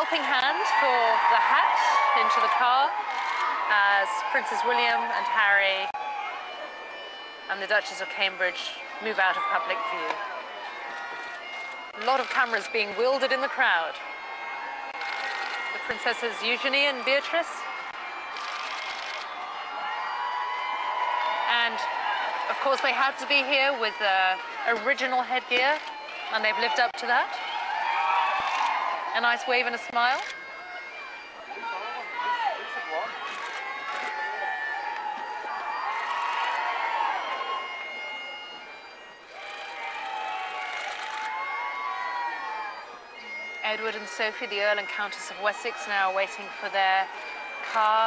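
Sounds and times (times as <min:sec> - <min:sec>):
people clapping: 0:00.0 - 0:05.9, 0:14.1 - 0:29.1, 0:32.1 - 0:43.5
crowd cheering and calling out: 0:00.0 - 0:48.0.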